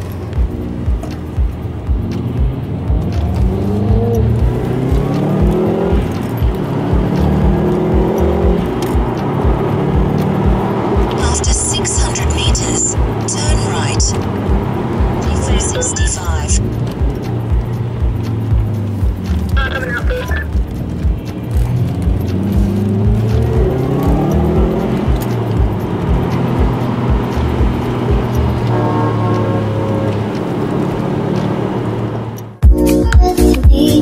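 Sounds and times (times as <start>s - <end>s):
car engine heard from cabin: 0.0s - 34.0s
music with steady beat: 0.0s - 34.0s.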